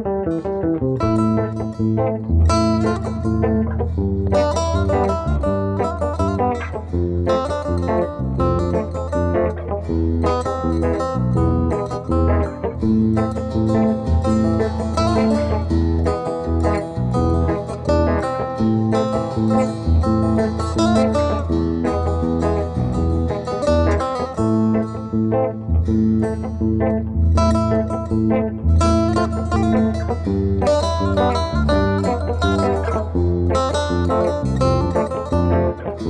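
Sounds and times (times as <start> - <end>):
electric bass line: 0.0 - 36.0
plucked setar notes: 0.0 - 36.0.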